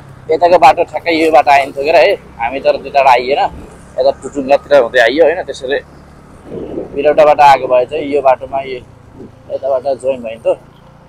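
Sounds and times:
motorcycle engine humming: 0:00.0 - 0:11.0
road noise: 0:00.0 - 0:11.0
person talking: 0:06.6 - 0:10.6.

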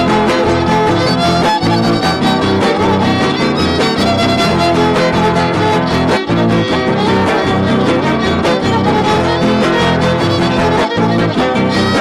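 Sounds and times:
guitars strumming rhythmically: 0:00.0 - 0:12.0
violin melody: 0:00.0 - 0:12.0.

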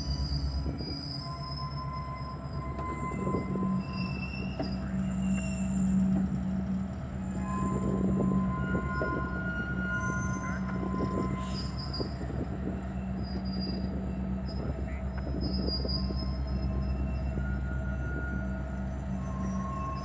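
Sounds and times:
diesel locomotive engines droning: 0:00.0 - 0:20.0
high wheel squeals: 0:00.0 - 0:20.0.

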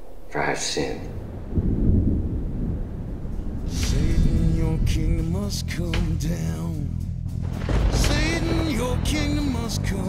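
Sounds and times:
deep low rumble: 0:01.1 - 0:10.0.

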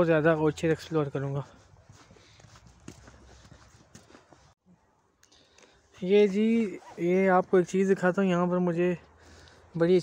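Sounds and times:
footsteps on thin snow: 0:00.0 - 0:04.6, 0:05.7 - 0:08.0.

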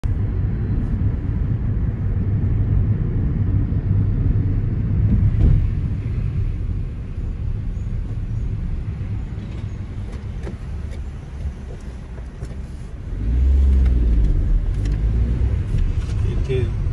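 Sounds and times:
car engine: 0:00.0 - 0:16.9
road rumble: 0:00.0 - 0:16.9.

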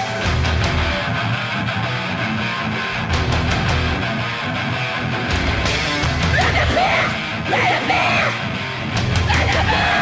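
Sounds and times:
hardcore band playing live: 0:00.0 - 0:10.0.

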